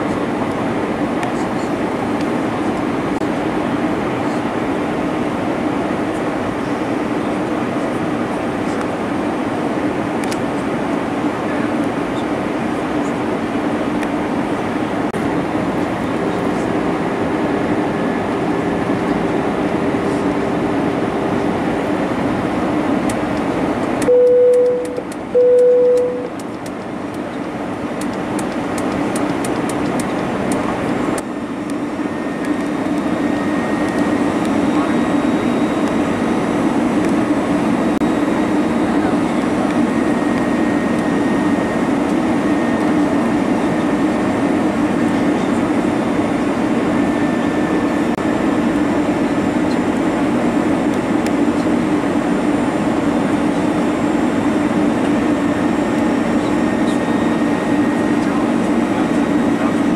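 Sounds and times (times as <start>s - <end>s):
jet engine cabin hum: 0.0s - 59.9s
short loud beeps: 24.1s - 26.3s.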